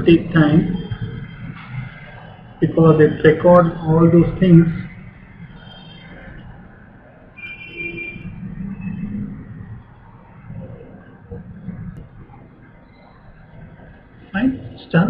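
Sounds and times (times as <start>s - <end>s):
faint high whine: 0.0s - 15.0s.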